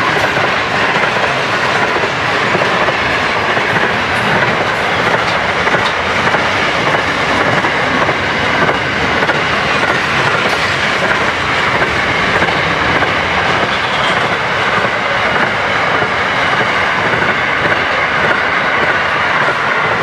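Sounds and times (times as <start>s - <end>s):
freight train wheels on rails: 0.0s - 20.0s.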